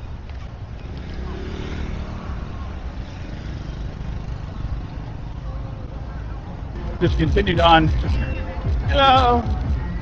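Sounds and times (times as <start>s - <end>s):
traffic rumble: 0.0s - 10.0s
motor scooter passing: 0.1s - 6.7s.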